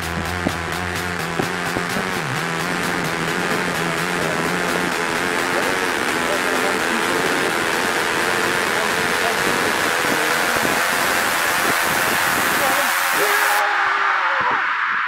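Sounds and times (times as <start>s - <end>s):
person speaking: 1.4s - 11.6s, 12.4s - 14.2s
wind rushing on microphone: 8.5s - 13.6s.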